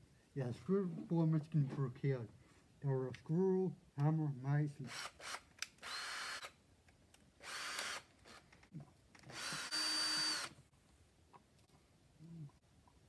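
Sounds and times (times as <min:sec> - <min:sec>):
cordless drill drilling into wood: 0:04.9 - 0:06.5, 0:07.4 - 0:08.4, 0:09.2 - 0:10.6.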